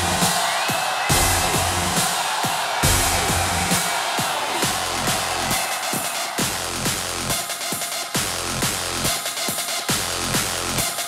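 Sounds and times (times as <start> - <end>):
heavy bass line: 0.0 - 0.4, 1.1 - 2.1, 2.8 - 3.8, 6.4 - 7.4.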